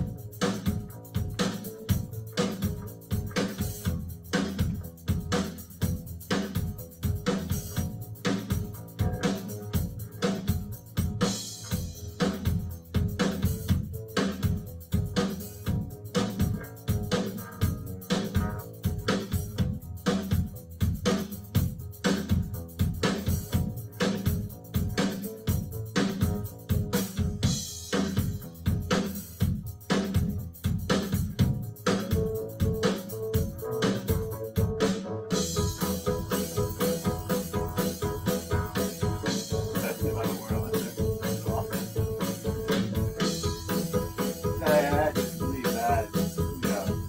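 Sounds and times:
bass: 0.0s - 47.0s
drum kit beat: 0.0s - 47.0s.

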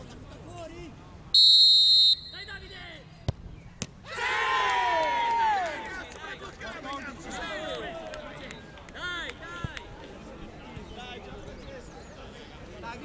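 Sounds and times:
referee's whistle: 1.4s - 2.8s
spectators shouting and cheering: 4.1s - 6.0s.

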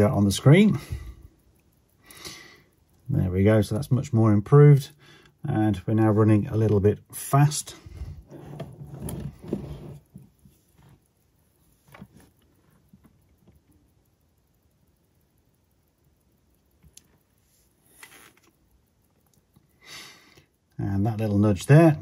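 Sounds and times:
faint clicks: 4.9s - 5.9s, 10.0s - 21.4s.

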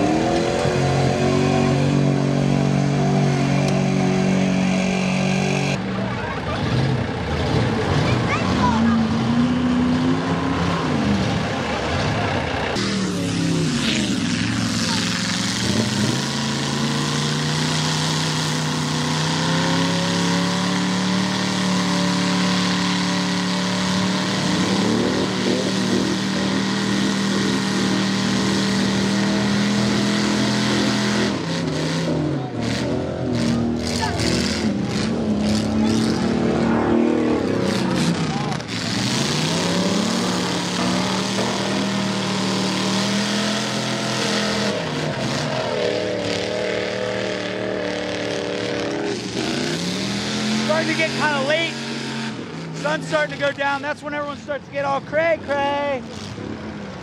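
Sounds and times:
engines revving high: 0.0s - 57.0s
vehicle churning through mud: 0.0s - 57.0s.

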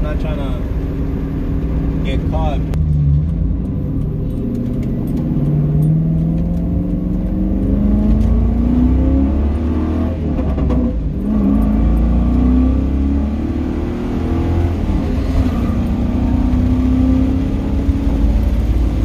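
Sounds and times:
car engine accelerating: 0.0s - 19.0s.

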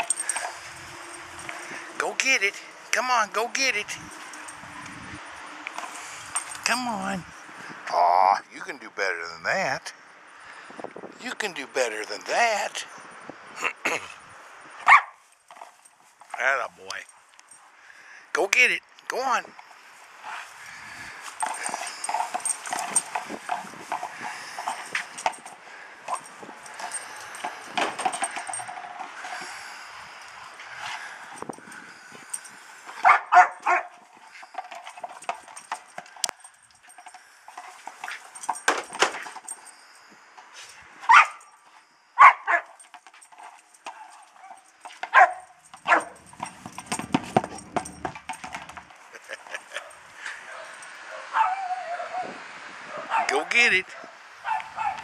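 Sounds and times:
dog barking: 14.8s - 15.2s, 33.0s - 33.9s, 41.1s - 41.4s, 42.2s - 42.8s, 43.9s - 46.2s, 49.7s - 52.3s, 52.9s - 53.3s, 53.9s - 55.0s.

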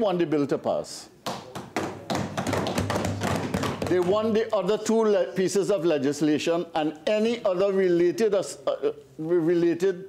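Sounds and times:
hands thumping on wooden desks: 1.2s - 4.5s.

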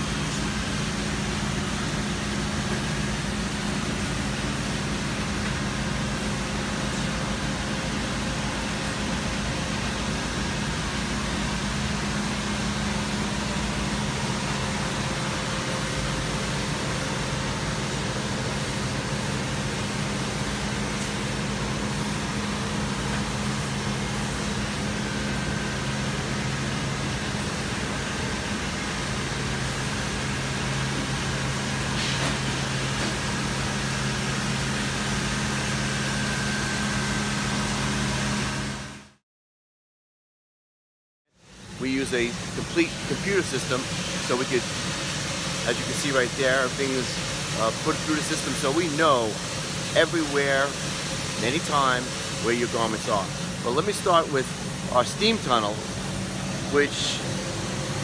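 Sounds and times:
machinery and ventilation hum: 0.0s - 39.2s, 41.4s - 58.0s.

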